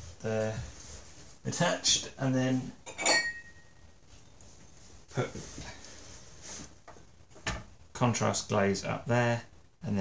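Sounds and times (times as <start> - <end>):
ceramic cup clinking: 2.9 - 3.6.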